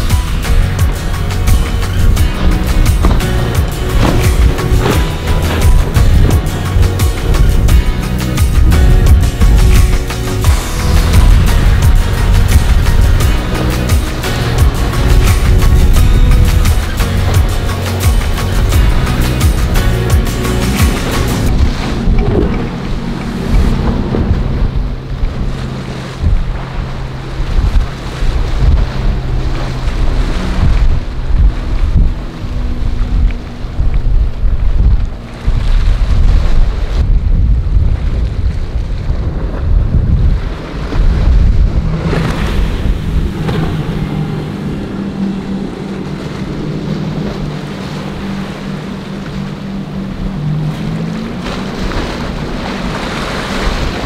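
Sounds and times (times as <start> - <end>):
boat engine drone: 0.0 - 54.0
rushing water: 0.0 - 54.0
wind buffeting microphone: 0.0 - 54.0.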